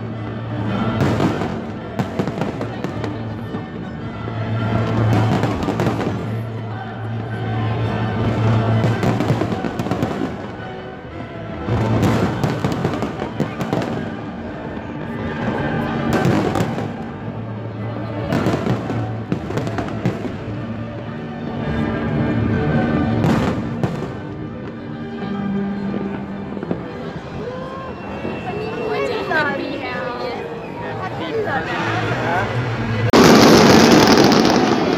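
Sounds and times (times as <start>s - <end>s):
fireworks bursting and crackling: 0.0s - 4.0s, 4.6s - 6.6s, 8.3s - 10.8s, 11.7s - 17.2s, 33.1s - 34.9s
music playing: 0.0s - 27.3s.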